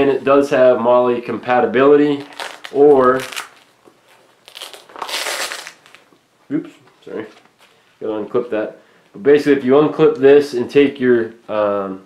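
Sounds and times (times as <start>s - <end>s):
nylon pouch rustling and scraping: 2.2s - 6.1s.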